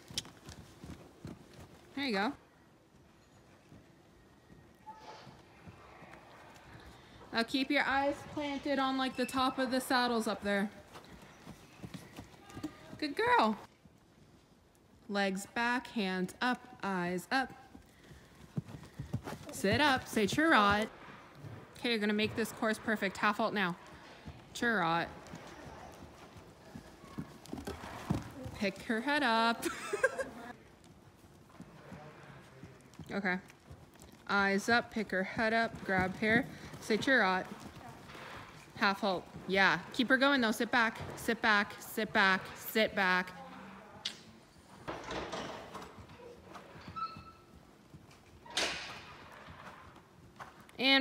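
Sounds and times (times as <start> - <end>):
horse hoofbeats on sand: 0.0 - 2.2, 10.4 - 13.7, 17.5 - 29.3, 30.5 - 41.8, 49.1 - 51.0.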